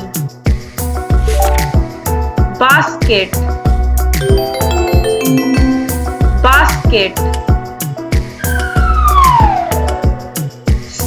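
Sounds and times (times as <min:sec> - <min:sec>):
upbeat children's music: 0:04.2 - 0:07.0.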